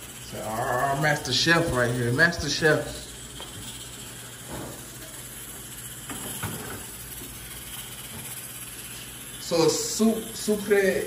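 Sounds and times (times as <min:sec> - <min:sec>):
gas stove hiss: 0:00.0 - 0:11.0.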